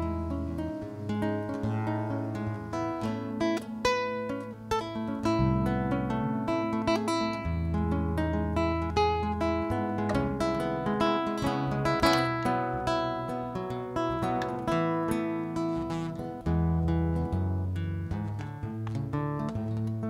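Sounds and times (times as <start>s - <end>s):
fingerstyle classical guitar: 0.0s - 20.0s.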